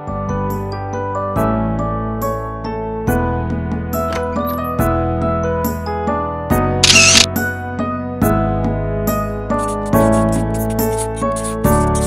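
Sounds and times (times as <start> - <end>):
background keyboard music: 0.0 - 12.0
camera shutter sound effect: 6.8 - 7.3.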